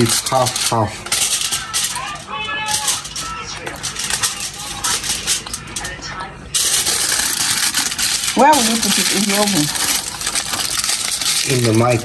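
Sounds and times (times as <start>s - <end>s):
aluminium foil crinkling: 0.0s - 12.0s.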